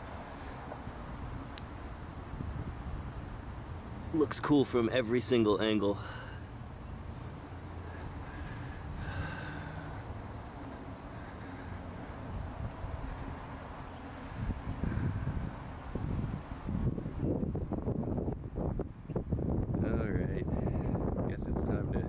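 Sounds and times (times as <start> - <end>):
low steady hum: 0.0 - 20.6
wind buffeting microphone: 0.6 - 4.1, 12.1 - 22.0.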